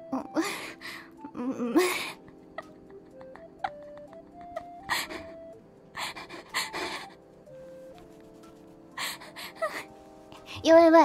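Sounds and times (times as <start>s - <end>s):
woman laughing breathily: 0.2s - 7.3s, 9.0s - 10.0s.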